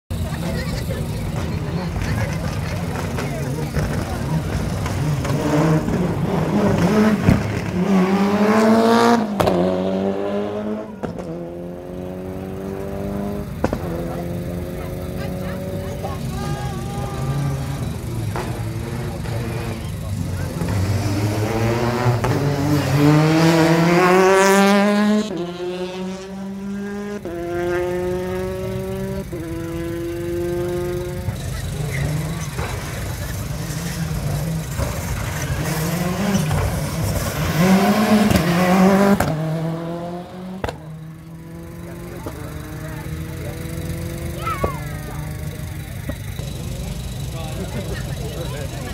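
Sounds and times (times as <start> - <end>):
rally car engines accelerating: 0.1 - 48.9.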